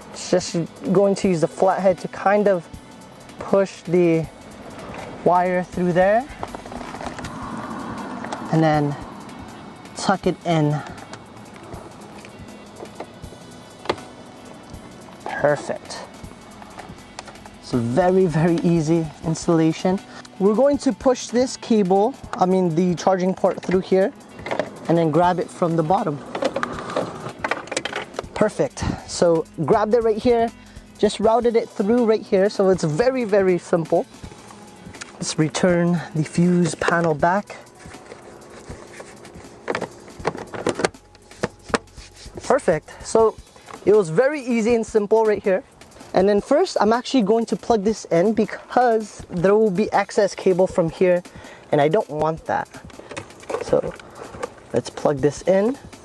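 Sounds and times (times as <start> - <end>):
soft background music: 0.0 - 56.0
cable rustling and scraping: 3.4 - 20.4, 21.1 - 30.0, 32.5 - 48.0, 51.8 - 55.8.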